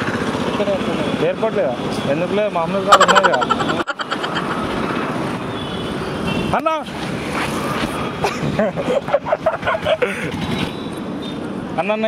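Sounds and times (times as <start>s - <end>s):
motorbikes and vehicles passing: 0.0s - 12.0s
people talking: 0.6s - 4.4s.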